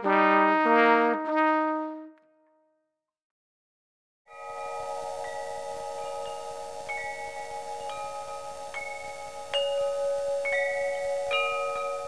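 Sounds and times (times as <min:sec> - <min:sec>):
bell-like chime jingle: 0:04.3 - 0:12.0.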